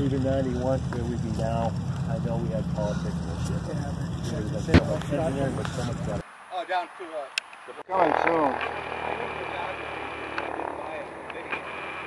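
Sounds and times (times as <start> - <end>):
faint voices: 0.0 - 6.2
light aircraft engine droning: 0.0 - 6.2.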